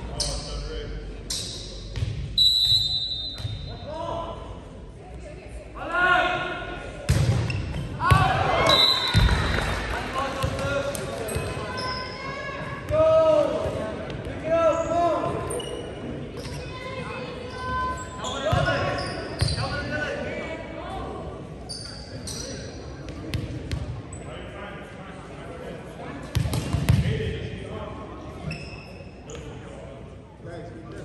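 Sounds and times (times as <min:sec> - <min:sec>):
voices echoing in a hall: 0:00.0 - 0:31.0
sneakers squeaking: 0:00.1 - 0:03.8, 0:07.1 - 0:09.6, 0:10.4 - 0:12.9, 0:13.6 - 0:19.9, 0:21.6 - 0:24.4, 0:28.3 - 0:29.6.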